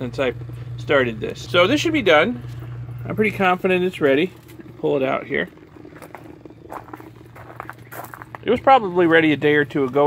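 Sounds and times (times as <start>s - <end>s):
aquarium air pump humming: 0.0s - 10.0s.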